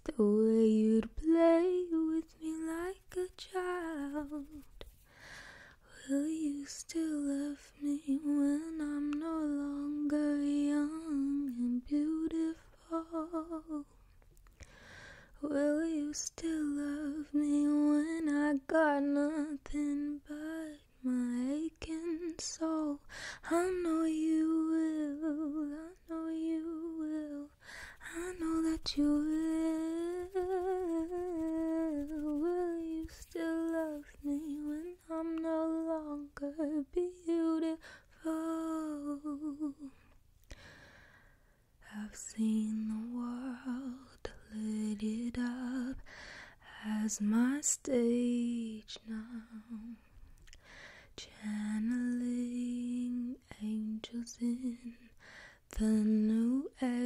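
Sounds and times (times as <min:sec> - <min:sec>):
woman softly humming: 0:24.5 - 0:36.2.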